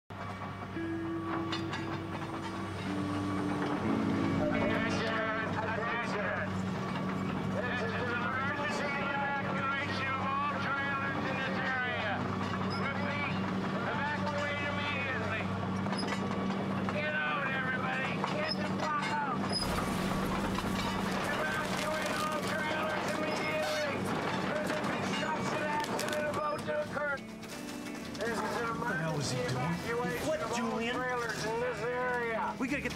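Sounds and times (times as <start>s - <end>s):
excavator diesel engine humming: 0.1s - 27.3s.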